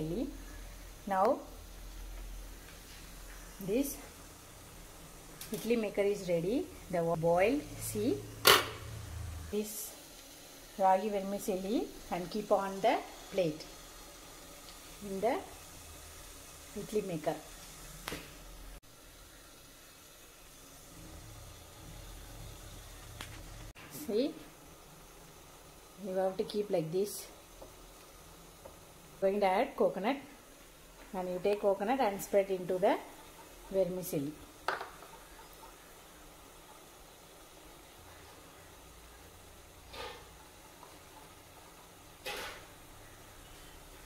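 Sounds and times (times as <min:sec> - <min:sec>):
gas burner hissing: 0:00.0 - 0:44.0
water boiling: 0:00.0 - 0:44.0.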